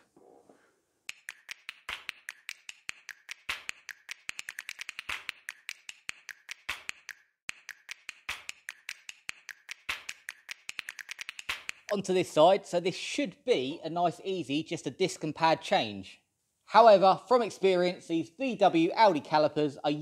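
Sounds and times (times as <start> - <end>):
sharp clicks and taps: 1.1 - 11.9.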